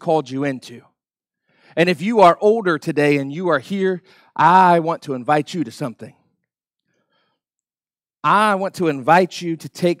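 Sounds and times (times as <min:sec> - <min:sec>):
man speaking: 0:00.0 - 0:00.9, 0:01.8 - 0:06.2, 0:08.2 - 0:10.0
faint breath: 0:06.8 - 0:07.6.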